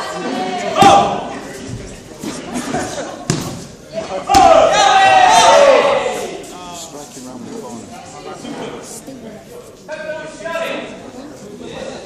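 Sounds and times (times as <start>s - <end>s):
loud drawn-out shout: 4.3s - 6.4s.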